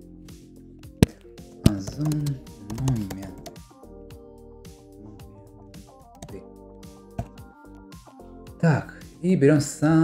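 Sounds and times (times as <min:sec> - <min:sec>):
background music: 0:00.0 - 0:10.0
person speaking: 0:01.0 - 0:03.6.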